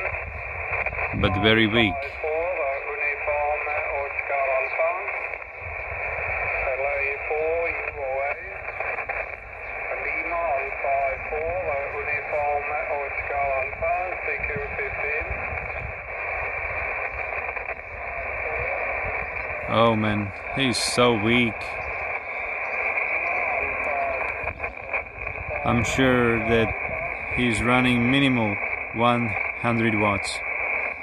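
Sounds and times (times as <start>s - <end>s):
radio static hiss: 0.0s - 31.0s
radio voice: 0.0s - 31.0s.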